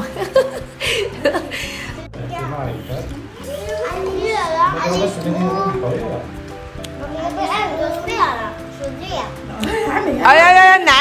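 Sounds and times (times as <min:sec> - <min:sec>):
background music: 0:00.0 - 0:11.0
children chattering: 0:02.0 - 0:06.2, 0:06.9 - 0:10.1.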